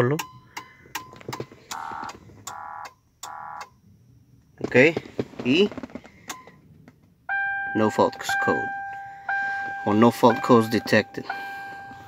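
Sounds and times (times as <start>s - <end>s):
dashboard warning chime beeps: 7.3s - 12.0s.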